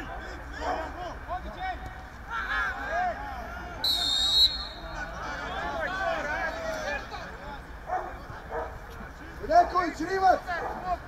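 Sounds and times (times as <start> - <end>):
voices shouting: 0.0 - 8.4
dog barking: 7.9 - 8.8.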